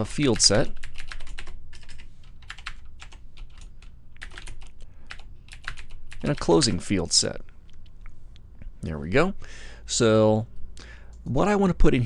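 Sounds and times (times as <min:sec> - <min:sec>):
faint low hum: 0:00.0 - 0:12.0
typing on a keyboard: 0:00.3 - 0:06.4.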